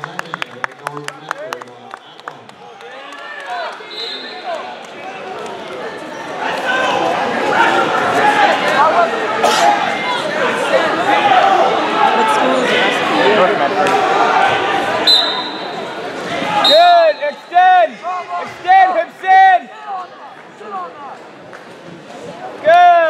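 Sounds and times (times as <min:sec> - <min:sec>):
crowd chatter: 0:00.0 - 0:23.0
referee's whistle blasts: 0:03.9 - 0:04.5, 0:15.0 - 0:15.8, 0:16.6 - 0:17.5.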